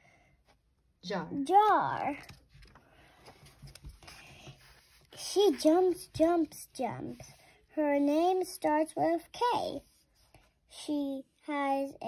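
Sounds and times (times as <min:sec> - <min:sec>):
paper pages flipping: 0:02.1 - 0:06.0.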